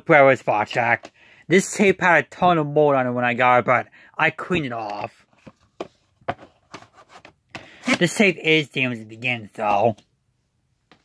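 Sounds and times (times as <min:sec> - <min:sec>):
person speaking: 0:00.0 - 0:05.5, 0:07.6 - 0:10.1.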